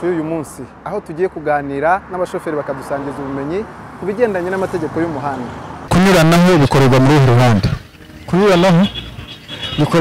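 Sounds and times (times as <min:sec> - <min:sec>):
man talking into microphone: 0:00.0 - 0:09.0, 0:09.8 - 0:10.0.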